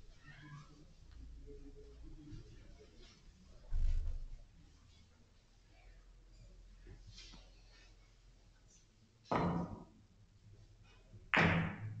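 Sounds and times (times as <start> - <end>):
cue striking billiard ball: 11.4 - 12.0.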